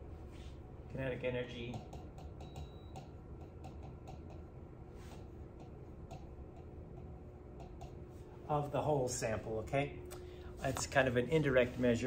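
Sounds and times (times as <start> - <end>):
stylus ticking on glass screen: 1.7 - 4.5.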